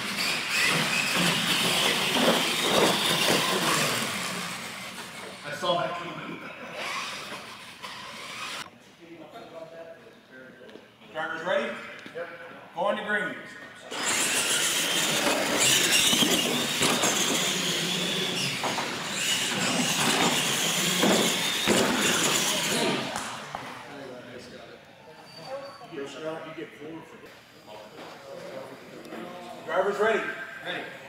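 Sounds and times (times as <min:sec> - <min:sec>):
toy truck motors whining: 0:00.0 - 0:05.6, 0:06.7 - 0:08.7, 0:13.9 - 0:23.2
tyre noise on concrete: 0:14.0 - 0:23.3.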